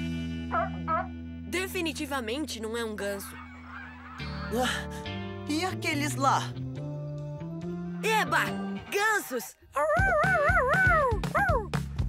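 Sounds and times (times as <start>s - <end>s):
upbeat background music: 0.0s - 12.0s
cartoon puppy howling: 3.1s - 4.5s, 9.8s - 11.7s.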